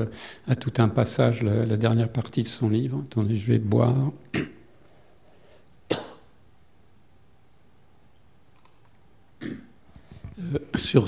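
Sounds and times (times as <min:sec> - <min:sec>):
man coughing: 0:05.9 - 0:06.3.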